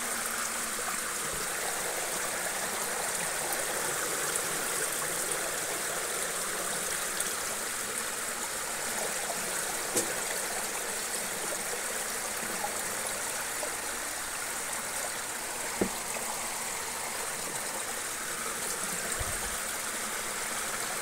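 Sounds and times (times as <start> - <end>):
shallow water flowing: 0.0 - 21.0.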